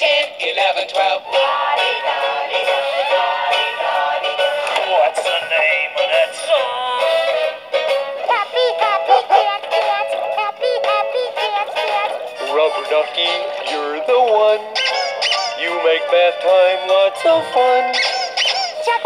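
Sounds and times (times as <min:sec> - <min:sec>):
people singing songs: 0:00.0 - 0:07.3, 0:15.6 - 0:18.0
instrumental backing: 0:01.0 - 0:19.0.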